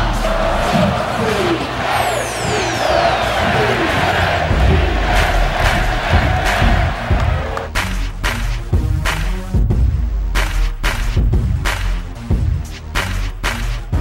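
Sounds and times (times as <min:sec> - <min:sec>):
stadium crowd cheering: 0:00.0 - 0:07.7
music: 0:00.0 - 0:14.0.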